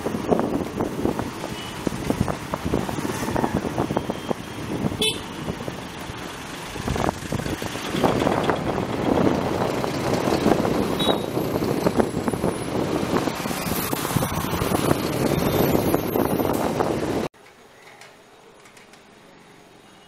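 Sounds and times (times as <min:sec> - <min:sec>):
vehicle engines rumbling: 0:00.0 - 0:19.8
car horn toot: 0:05.0 - 0:05.3, 0:11.0 - 0:11.4.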